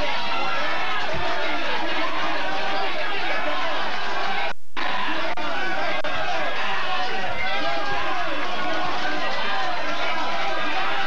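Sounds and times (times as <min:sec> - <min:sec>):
people shouting in argument: 0:00.0 - 0:11.0.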